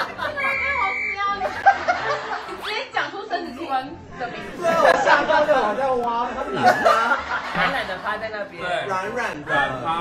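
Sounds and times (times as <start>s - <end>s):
people laughing and chattering: 0.0s - 8.8s.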